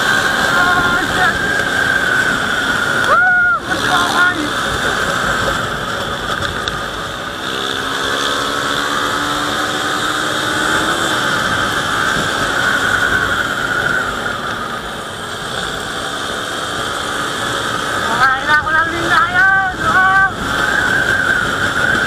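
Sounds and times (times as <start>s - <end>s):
motorcycle engine running: 0.0s - 22.0s
wind rushing over microphone: 0.0s - 22.0s.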